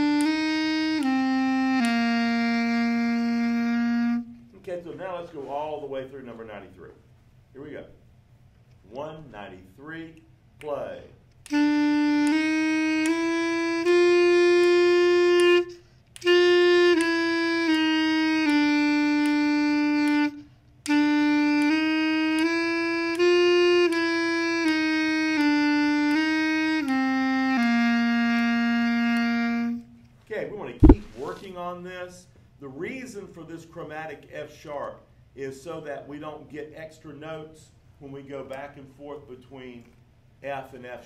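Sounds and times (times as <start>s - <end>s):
clarinet playing slow phrases: 0.0s - 4.6s, 11.5s - 30.1s, 30.8s - 31.3s
sharp click: 30.8s - 31.1s.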